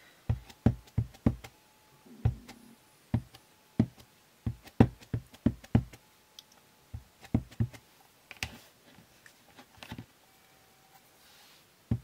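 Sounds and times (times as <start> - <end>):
ink pad tapping rubber stamp: 0.3 - 1.5, 3.2 - 6.0, 7.0 - 7.8.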